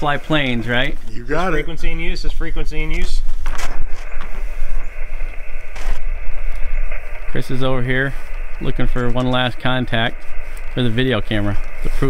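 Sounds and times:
low rumble: 1.6 - 12.0.

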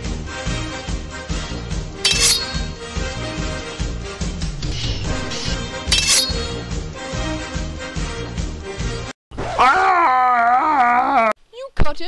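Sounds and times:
background music: 0.0 - 9.1
sword clash: 2.0 - 2.7, 4.8 - 6.5.

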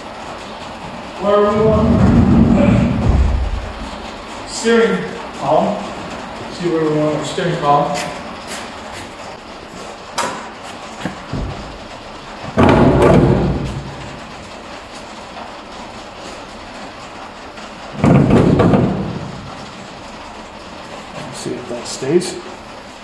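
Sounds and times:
metal clunking and rattling: 0.4 - 6.7, 8.0 - 21.4.

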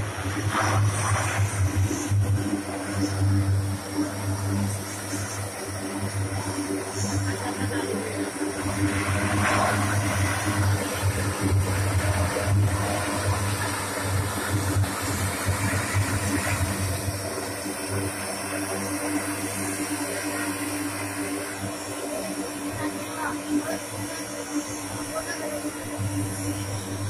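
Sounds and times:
turboprop engines droning: 0.0 - 27.0.

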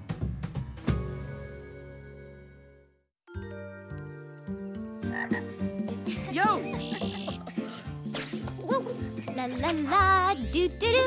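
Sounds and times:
frogs croaking: 5.0 - 5.6, 6.6 - 7.6.

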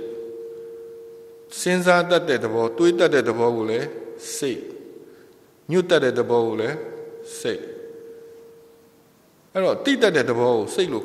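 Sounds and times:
microphone feedback ring: 0.0 - 2.0, 6.8 - 9.1
man speaking: 9.5 - 11.0.

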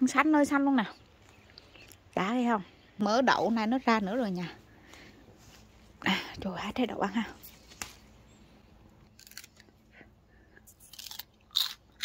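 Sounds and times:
pea pod crunching: 9.0 - 9.9, 10.6 - 12.0.

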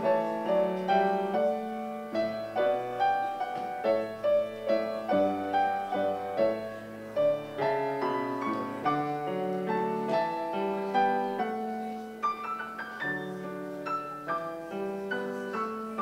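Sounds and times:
slow chordal keyboard piece: 0.0 - 16.0.

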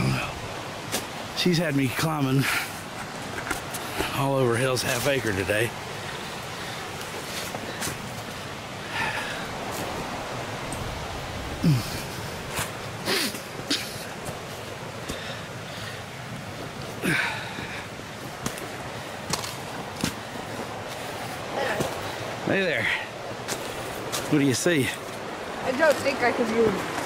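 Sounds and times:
steady background hiss: 0.0 - 27.0
person breathing hard and grunting: 11.6 - 14.1, 17.0 - 17.9.

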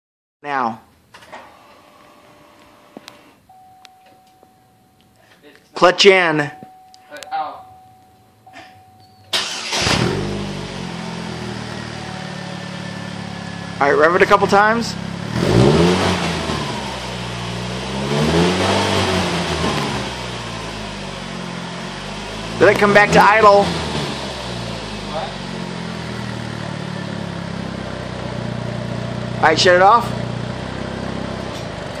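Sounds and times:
car engine starting and idling: 6.5 - 32.0
car engine idling then switched off: 8.5 - 13.8, 23.8 - 29.4.

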